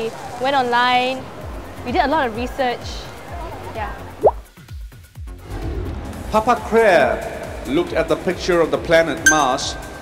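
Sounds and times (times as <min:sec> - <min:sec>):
background music: 0:00.6 - 0:10.0.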